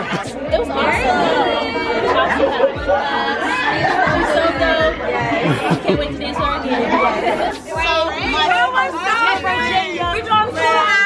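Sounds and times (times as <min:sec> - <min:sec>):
background music beat: 0:00.0 - 0:11.0
women talking excitedly: 0:00.0 - 0:11.0.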